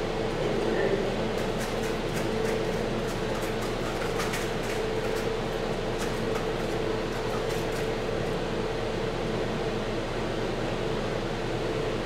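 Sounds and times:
fan humming: 0.0s - 12.0s.

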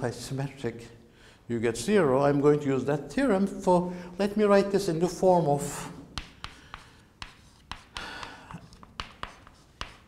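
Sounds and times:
chalk tapping and scratching on board: 6.1s - 10.0s.

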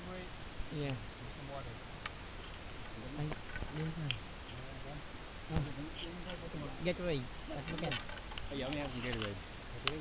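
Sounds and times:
men talking quietly: 0.0s - 2.0s, 2.8s - 10.0s.

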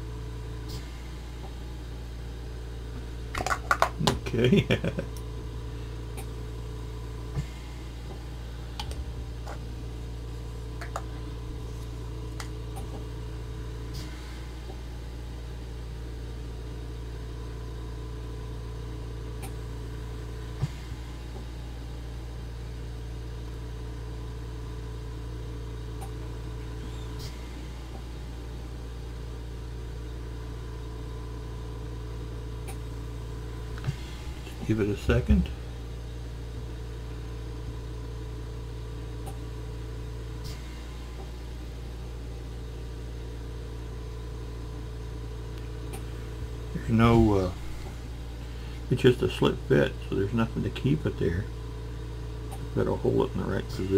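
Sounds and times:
low equipment hum: 0.0s - 53.9s.

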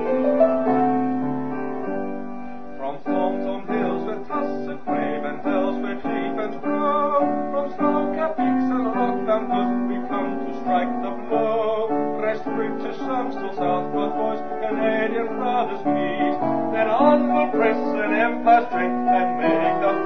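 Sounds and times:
piano chords: 0.0s - 20.0s.

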